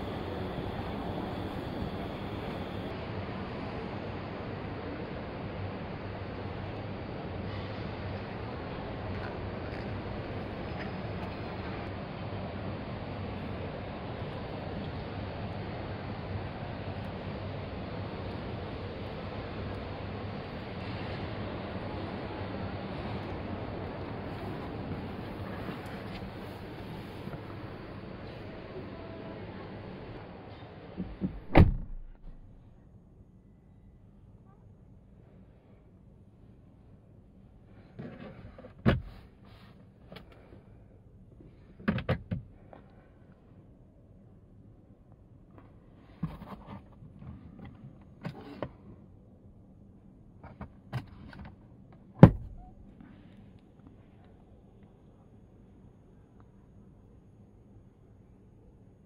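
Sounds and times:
distant noise: 0.0s - 2.9s
low hum: 0.0s - 37.9s
soft clicks and knocks in car: 41.8s - 42.8s.

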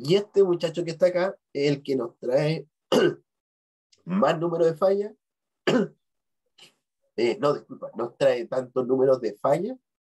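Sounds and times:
man coughing: 2.9s - 3.2s, 5.7s - 6.0s.

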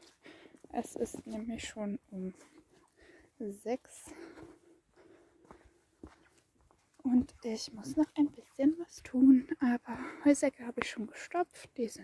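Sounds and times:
footsteps on grass and dirt: 0.0s - 2.9s, 4.1s - 9.4s.

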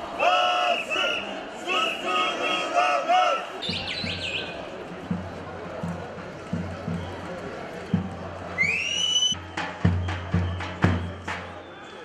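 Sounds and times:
low drum beats: 3.6s - 8.6s, 9.3s - 11.6s
shrill whistle blast: 8.6s - 12.0s.

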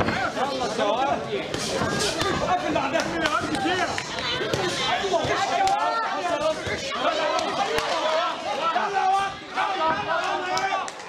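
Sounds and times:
voices talking and calling out: 0.0s - 11.0s.

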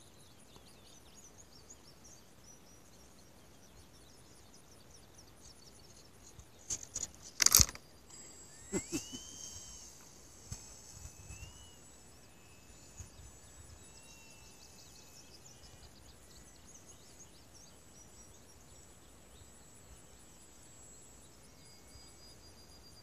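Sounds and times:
faint insect ticking: 0.0s - 23.0s
short whistled calls: 8.1s - 18.2s.

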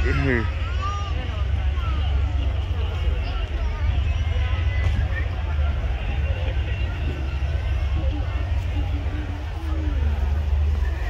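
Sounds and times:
crowd chatter outdoors: 0.0s - 11.0s
steady low rumble: 0.0s - 11.0s.

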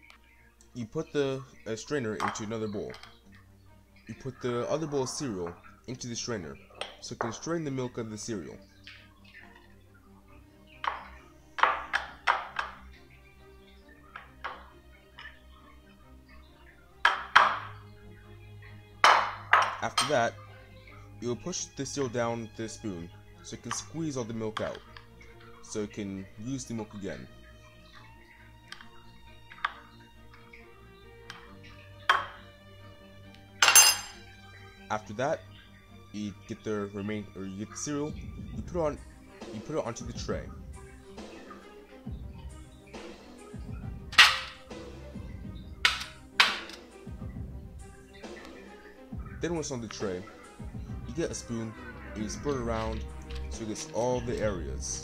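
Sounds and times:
quiet background music: 0.0s - 55.0s
metal spoon against ceramic bowl: 33.6s - 34.2s.

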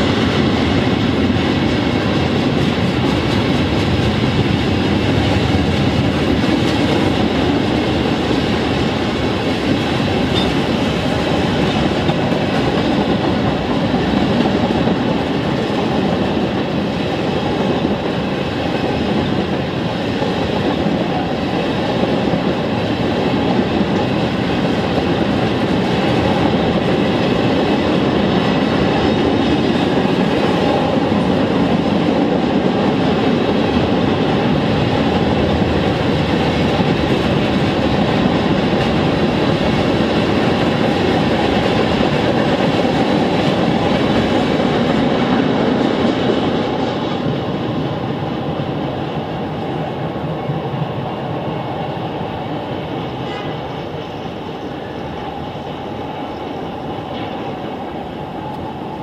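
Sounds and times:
freight train passing: 0.0s - 59.0s.

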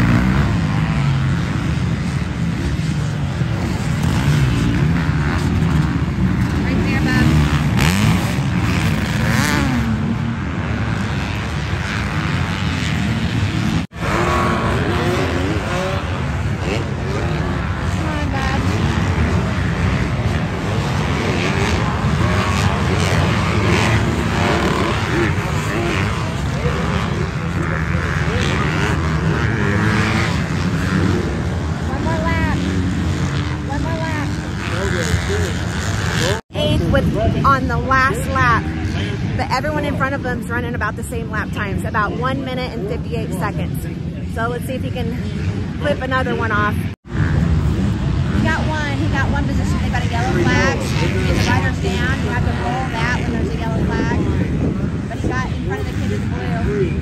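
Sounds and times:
dirt bike engines revving: 0.0s - 57.0s
voices: 0.0s - 57.0s.

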